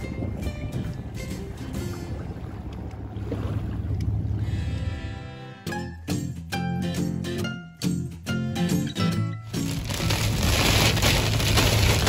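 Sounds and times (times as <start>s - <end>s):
wind buffeting microphone: 0.0s - 4.4s.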